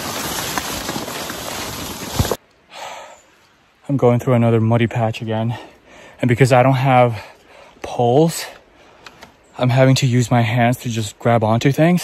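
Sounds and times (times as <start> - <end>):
branches scraping against microphone: 0.0 - 2.4.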